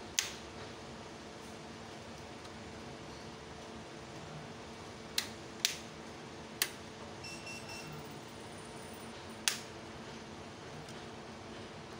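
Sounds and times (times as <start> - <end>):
inverter and cooling fan hum: 0.0 - 11.9
rocker switch clicks: 9.4 - 9.7.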